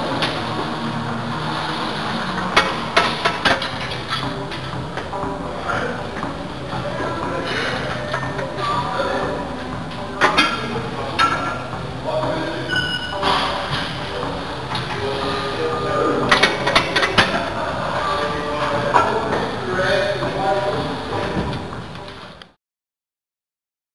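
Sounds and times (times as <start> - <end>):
background voices: 0.0 - 22.3
background music: 0.0 - 22.6.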